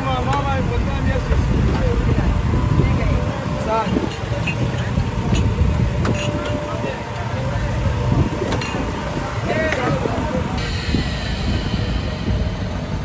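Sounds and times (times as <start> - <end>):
low street rumble: 0.0 - 13.0.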